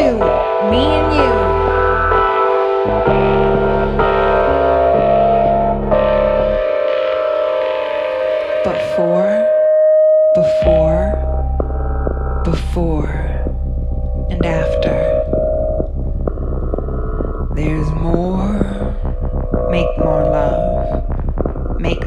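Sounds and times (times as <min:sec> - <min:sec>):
deep low drone: 0:00.0 - 0:06.7, 0:10.6 - 0:22.0
sustained synthesizer chords: 0:00.0 - 0:22.0.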